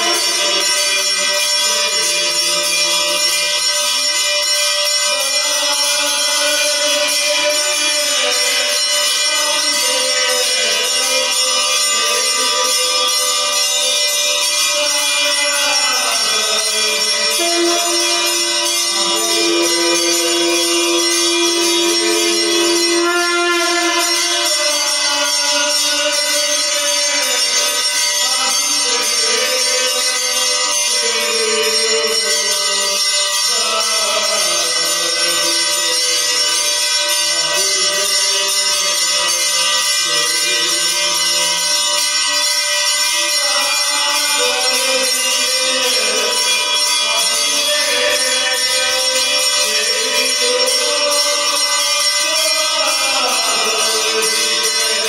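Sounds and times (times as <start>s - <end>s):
devotional music: 0.0s - 55.0s
jingling percussion: 0.0s - 55.0s.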